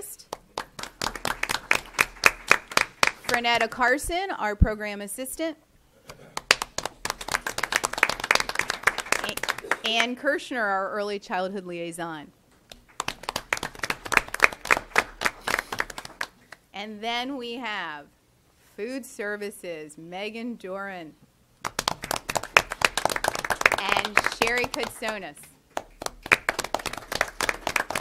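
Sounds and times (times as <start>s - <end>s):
people clapping: 0.0s - 3.8s, 6.1s - 10.2s, 12.7s - 16.6s, 21.6s - 28.0s
people applauding: 0.3s - 3.5s, 6.3s - 10.1s, 12.7s - 16.6s, 21.6s - 28.0s.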